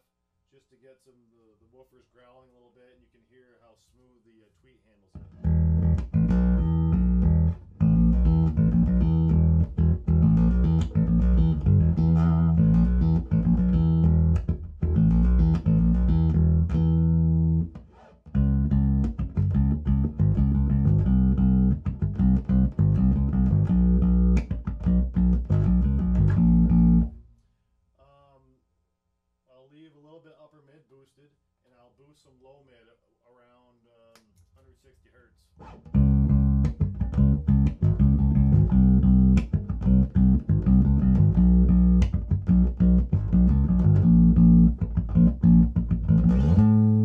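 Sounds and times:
electric bass guitar growling: 0:05.2 - 0:27.1, 0:35.7 - 0:47.0.

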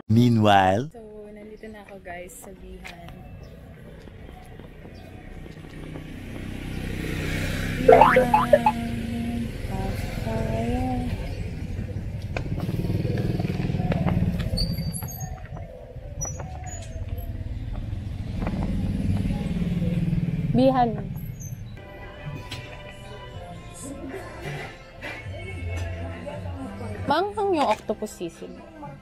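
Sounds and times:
small vehicle engine passing: 0:05.1 - 0:07.9, 0:08.7 - 0:14.6, 0:17.1 - 0:21.7
held tone: 0:07.9 - 0:08.8.

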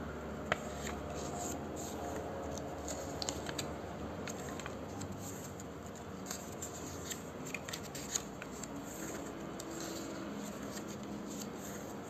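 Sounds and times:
paper pages turning: 0:00.5 - 0:12.0.

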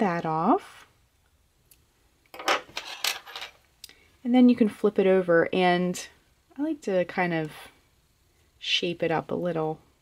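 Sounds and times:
metal clinks on wooden table: 0:02.4 - 0:03.6.

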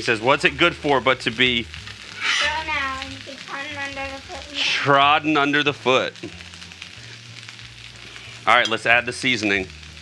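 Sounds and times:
rice sizzling on a griddle: 0:00.0 - 0:10.0.

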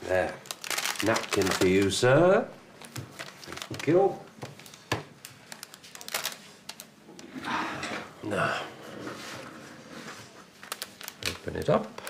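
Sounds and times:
packaging crinkling and clicking: 0:00.2 - 0:02.0, 0:02.8 - 0:06.9, 0:10.6 - 0:12.0.

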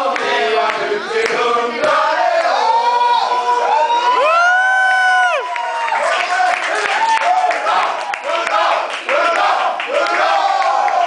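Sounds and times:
group of voices singing: 0:00.0 - 0:03.9, 0:07.6 - 0:11.0.

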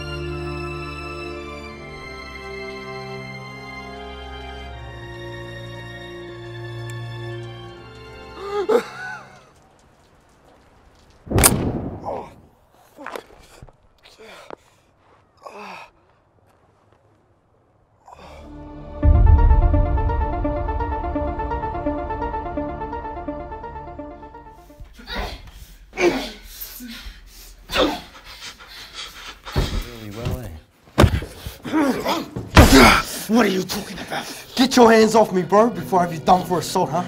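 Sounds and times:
loud gunshot: 0:11.3 - 0:12.4
person panting heavily: 0:12.9 - 0:16.2, 0:18.1 - 0:18.6, 0:24.6 - 0:30.1.

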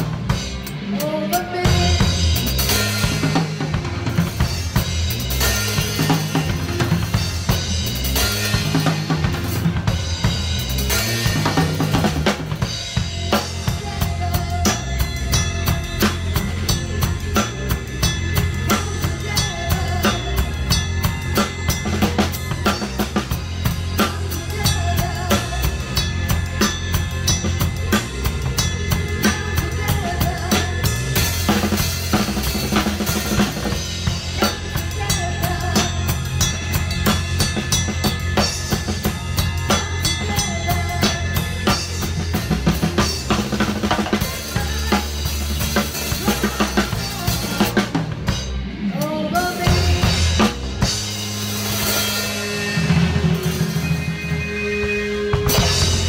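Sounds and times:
bass guitar: 0:00.0 - 0:56.0
electric guitar: 0:00.0 - 0:56.0
rock drum kit playing: 0:00.0 - 0:56.0.

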